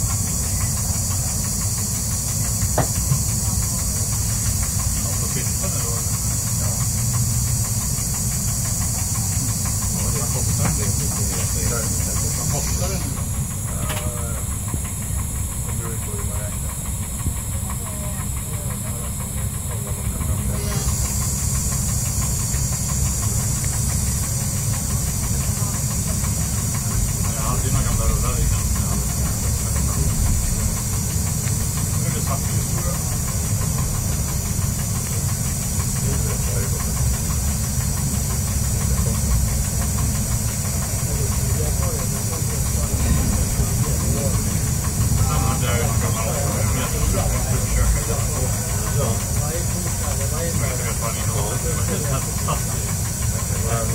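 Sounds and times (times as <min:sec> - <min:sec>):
train engine and wheels rumbling: 0:00.0 - 0:53.9.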